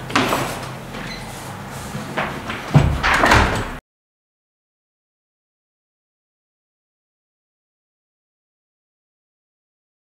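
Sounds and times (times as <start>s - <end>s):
heavy door thud: 2.2s - 3.8s
wooden door knocking and rattling: 2.7s - 3.8s.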